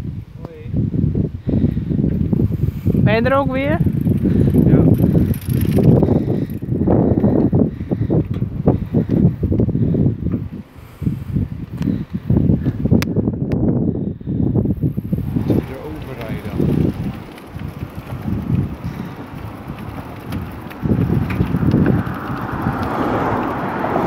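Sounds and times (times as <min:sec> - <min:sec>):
wind buffeting microphone: 0:00.0 - 0:24.0
bicycle rattling: 0:01.4 - 0:24.0.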